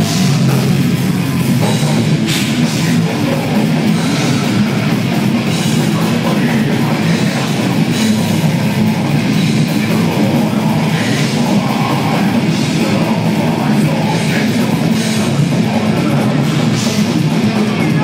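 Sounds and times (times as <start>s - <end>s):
bass guitar: 0.0s - 18.0s
distorted electric guitars: 0.0s - 18.0s
drum kit: 0.0s - 18.0s.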